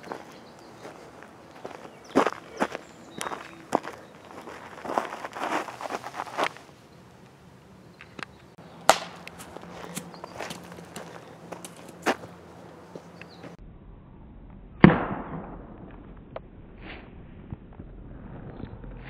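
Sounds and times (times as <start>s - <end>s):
croquet mallet striking ball: 8.9s - 10.1s
scuffs and taps: 9.2s - 13.6s.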